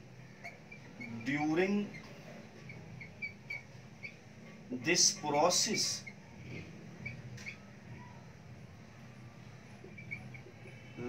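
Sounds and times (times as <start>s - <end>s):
faint low hum: 0.0s - 11.0s
marker pen squeaking on whiteboard: 0.0s - 11.0s.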